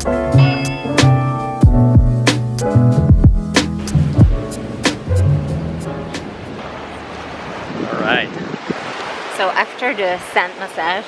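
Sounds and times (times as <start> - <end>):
background music with a beat: 0.0 - 6.3
sea surf: 3.6 - 11.0
wind on microphone: 6.2 - 9.2.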